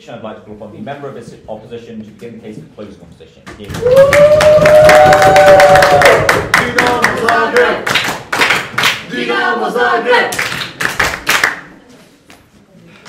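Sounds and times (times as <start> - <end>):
vocal whoop: 3.8 - 6.3
voices cheering: 3.8 - 7.7
audience applauding: 3.8 - 9.0.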